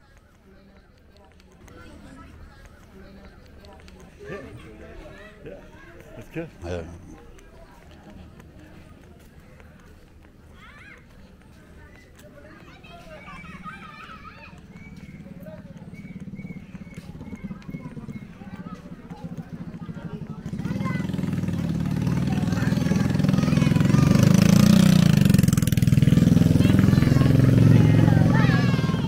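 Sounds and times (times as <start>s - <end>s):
faint children's voices: 0.0s - 29.0s
motorcycle passing: 11.8s - 29.0s.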